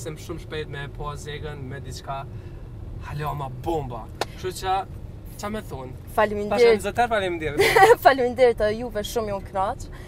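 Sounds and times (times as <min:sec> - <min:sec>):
car cabin hum: 0:00.0 - 0:10.0
man speaking: 0:03.0 - 0:04.8.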